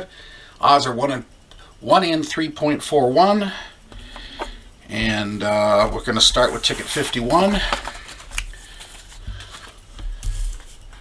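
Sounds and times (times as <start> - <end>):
paper rustling: 5.7 - 11.0.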